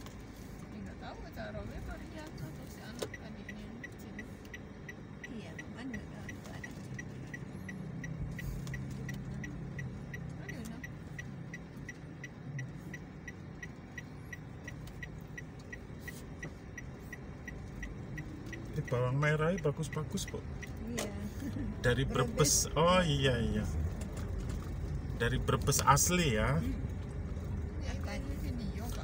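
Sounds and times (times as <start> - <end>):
car engine hum: 0.0 - 29.0
turn signal clicking: 0.0 - 29.0.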